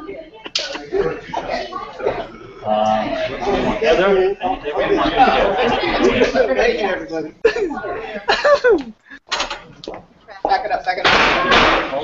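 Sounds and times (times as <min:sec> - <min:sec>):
faint voices: 0:00.0 - 0:09.3.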